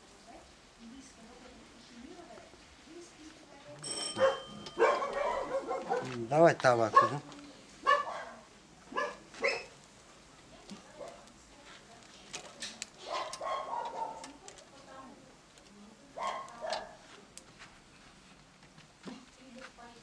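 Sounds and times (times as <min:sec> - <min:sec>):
dog barking: 0:04.2 - 0:06.2, 0:06.9 - 0:07.2, 0:07.8 - 0:09.8, 0:13.0 - 0:14.3, 0:16.2 - 0:17.0.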